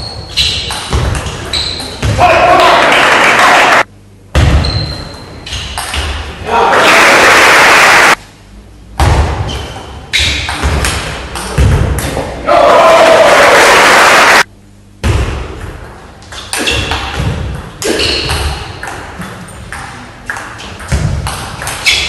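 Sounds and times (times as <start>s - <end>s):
spectators clapping and cheering: 2.5s - 3.9s, 6.6s - 8.2s, 12.9s - 14.5s.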